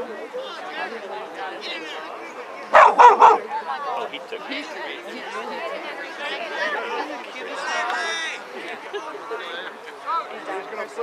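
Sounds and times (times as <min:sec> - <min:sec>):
crowd chatter: 0:00.0 - 0:11.0
dog barking: 0:02.8 - 0:03.5.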